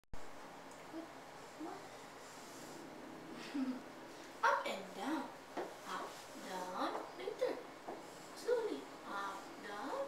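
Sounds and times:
room hiss: 0.2 - 10.0.

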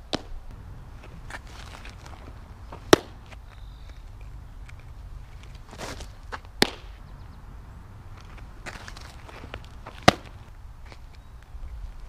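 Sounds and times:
shoes scuffing on dirt: 0.0 - 7.1, 8.1 - 12.0
wind rumble on microphone: 0.0 - 12.0.

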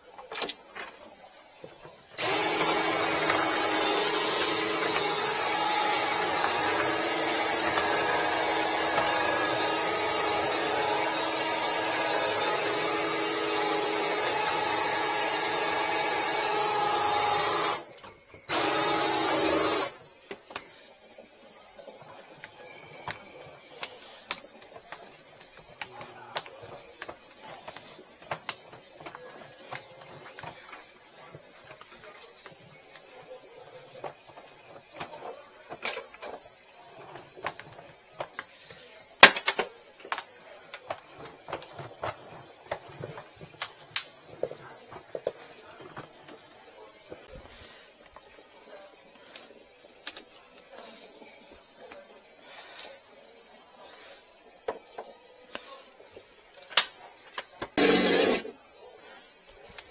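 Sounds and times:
drain snake motor whine: 2.2 - 17.8, 57.8 - 58.5.

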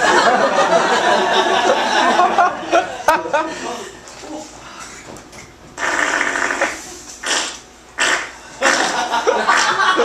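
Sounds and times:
person making raspy fart noises: 5.8 - 9.8.

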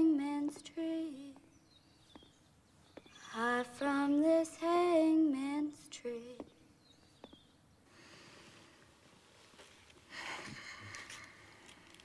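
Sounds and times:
soft rustle: 8.0 - 12.0.

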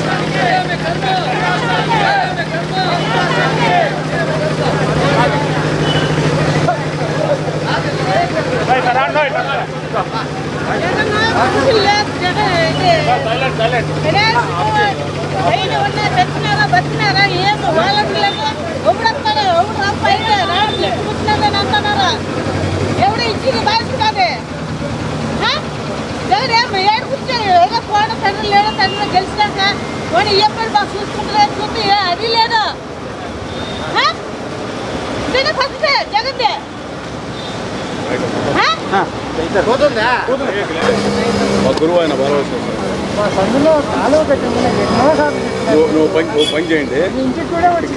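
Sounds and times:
men talking: 0.0 - 23.0, 38.0 - 47.9
woman talking: 10.7 - 13.3, 14.0 - 22.3, 22.9 - 24.5, 25.4 - 32.8, 33.9 - 34.3, 35.3 - 36.7.

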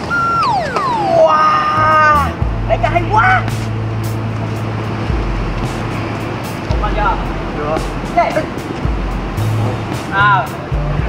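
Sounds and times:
low bass line: 0.5 - 11.0
light cymbal hits: 2.4 - 11.0.

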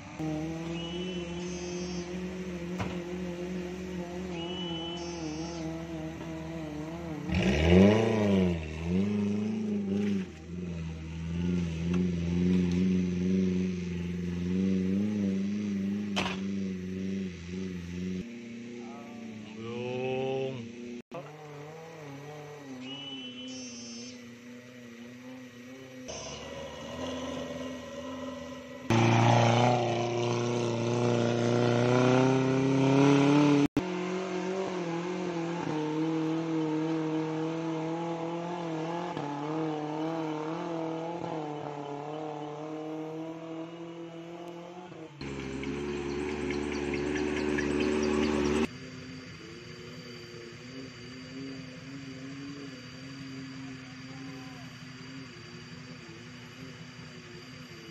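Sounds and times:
off-road engine revving: 0.0 - 57.9.

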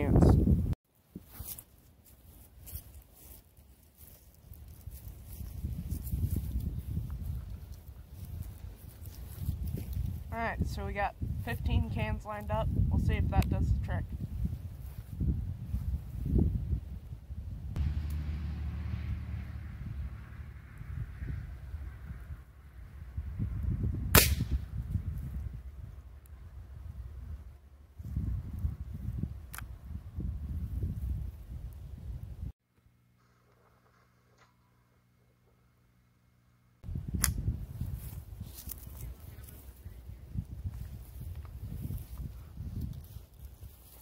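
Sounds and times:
rifle shot: 24.1 - 24.7.

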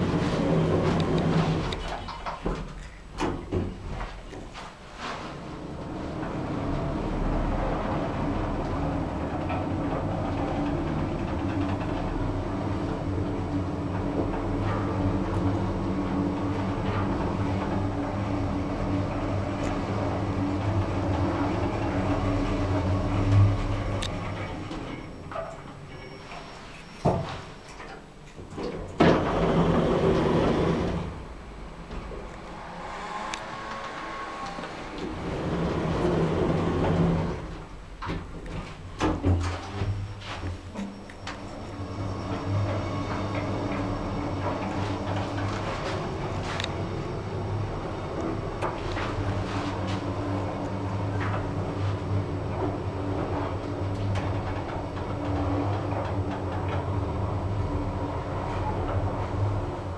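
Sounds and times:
lift ride noise: 0.0 - 2.1, 3.4 - 27.8, 28.8 - 59.9
lift doors sliding shut: 0.0 - 59.9
lift motor low hum: 5.4 - 27.2, 28.9 - 59.9.

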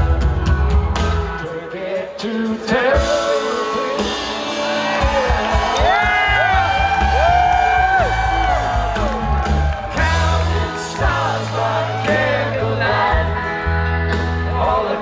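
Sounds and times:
live rock band: 0.0 - 15.0
audience whooping: 4.4 - 12.6.

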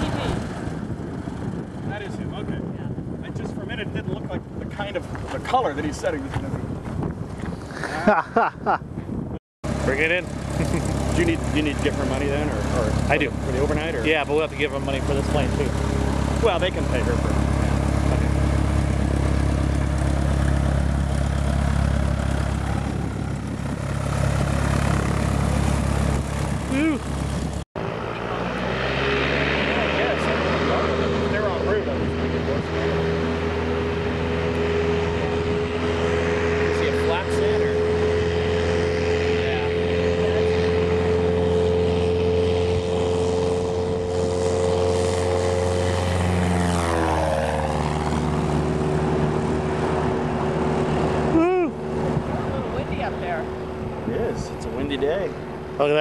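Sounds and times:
propeller plane engine: 0.0 - 56.0.

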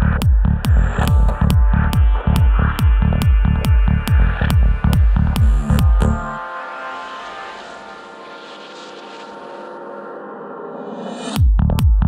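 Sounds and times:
droning synth pad: 1.1 - 10.6
hissing noise sweep: 4.0 - 11.3.

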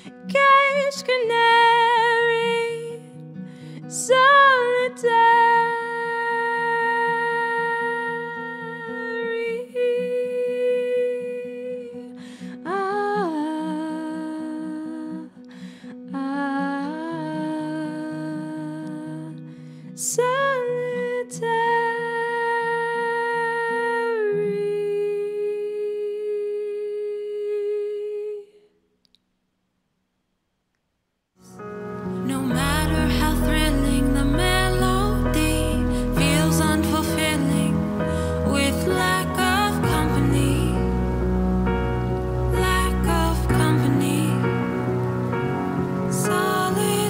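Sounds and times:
acoustic guitar strumming: 31.5 - 47.0
woman singing long note: 32.0 - 47.0.

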